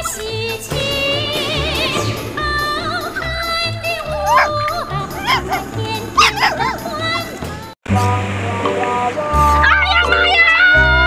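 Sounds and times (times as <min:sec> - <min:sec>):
background music: 0:00.0 - 0:11.0
high-pitched yelping cries: 0:04.0 - 0:06.9.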